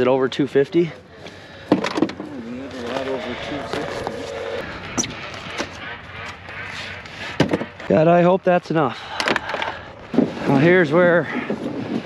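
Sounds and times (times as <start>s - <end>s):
indistinct voices: 0.0s - 8.0s.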